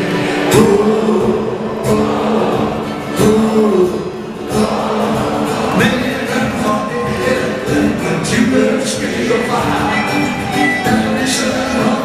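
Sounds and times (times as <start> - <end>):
strummed acoustic guitars: 0.0 - 12.0.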